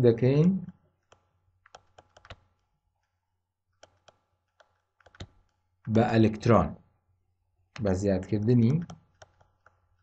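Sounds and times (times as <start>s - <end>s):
stylus tapping on pen tablet: 1.0s - 2.6s, 3.7s - 5.9s, 7.7s - 10.0s.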